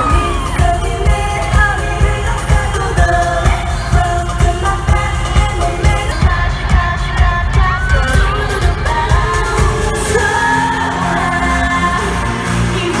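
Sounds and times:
female vocals over pop beat: 0.0 - 13.0.

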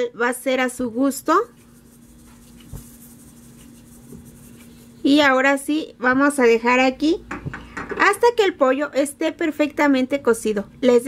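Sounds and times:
salt sprinkling into water: 1.2 - 5.1.

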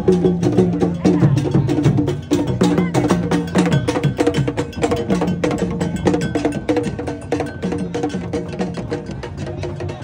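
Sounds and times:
wooden drums beaten with sticks: 0.0 - 10.0.

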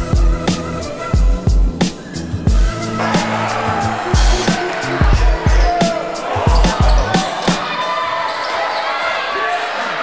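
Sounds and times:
crowd voices in gym: 3.0 - 10.0.

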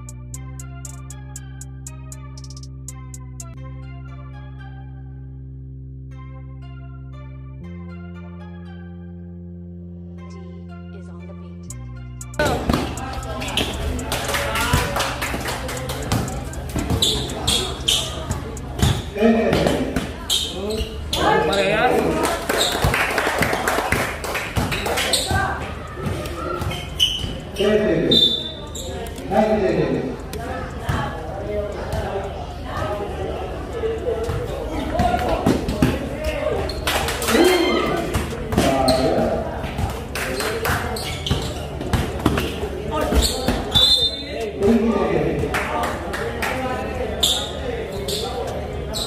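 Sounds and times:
spectators talking and calling out: 0.0 - 3.5, 10.6 - 49.0
basketball bouncing on court: 16.0 - 20.0.

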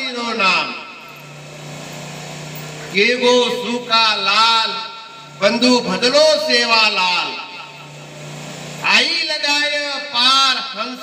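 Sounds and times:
steady low hum: 0.0 - 10.7
man speaking: 2.9 - 7.4.

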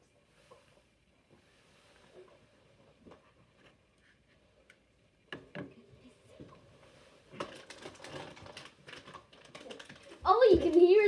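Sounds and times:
child speaking loudly: 10.2 - 11.0.

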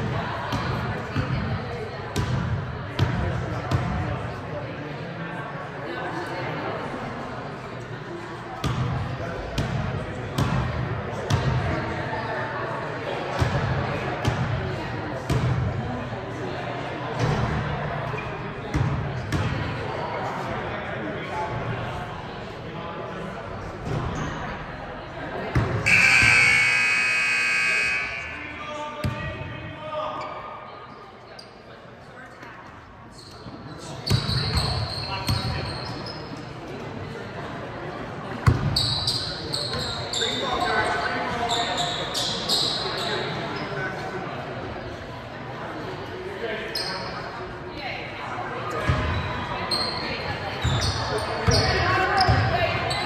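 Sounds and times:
echoing voices: 25.4 - 30.7
scoreboard buzzer: 25.9 - 28.6
sneaker squeaks: 25.9 - 29.2, 33.1 - 36.5, 38.5 - 43.7, 46.8 - 47.2, 48.9 - 53.0.

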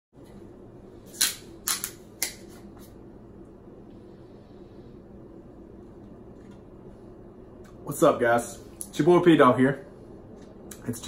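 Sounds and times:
steady low hum: 0.2 - 11.0.

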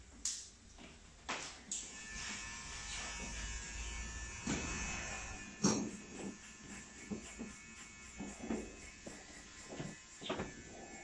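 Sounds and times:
small electric motor buzzing: 1.8 - 11.0.

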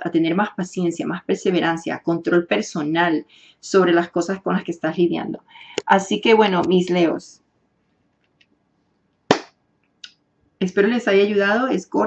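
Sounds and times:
sharp hand clap: 9.3 - 9.6.

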